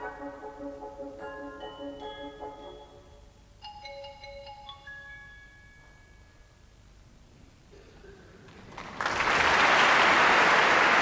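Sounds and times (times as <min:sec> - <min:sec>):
celesta bell-like notes: 0:01.2 - 0:06.6.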